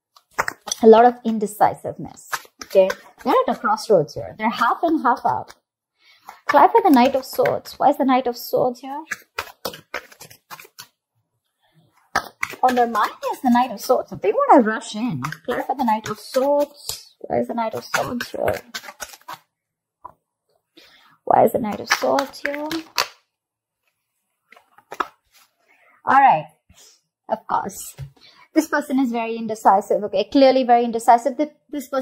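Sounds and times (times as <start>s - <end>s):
cards shuffling taps and clicks: 0.1s - 0.9s, 2.3s - 3.7s, 6.2s - 7.8s, 9.0s - 11.0s, 12.1s - 19.4s, 21.7s - 23.2s, 24.5s - 25.5s.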